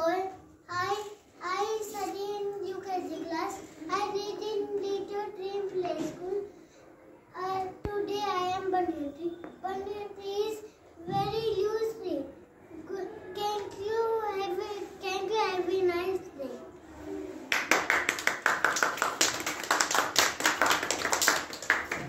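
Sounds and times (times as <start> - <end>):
child speaking: 0.0 - 6.5, 7.4 - 16.7
group clapping hands: 17.5 - 22.0.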